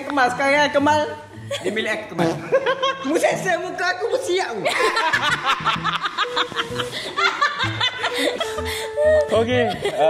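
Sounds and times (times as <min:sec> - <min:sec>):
background music: 0:00.0 - 0:10.0
man and woman laughing: 0:01.5 - 0:03.3, 0:04.7 - 0:10.0.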